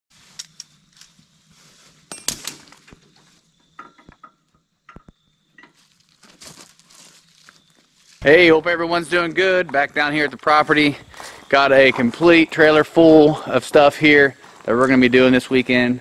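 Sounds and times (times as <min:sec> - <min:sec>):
metallic clinks on a trailer: 0:02.1 - 0:02.9, 0:03.6 - 0:05.8
footsteps on gravel and leaves: 0:05.8 - 0:15.7.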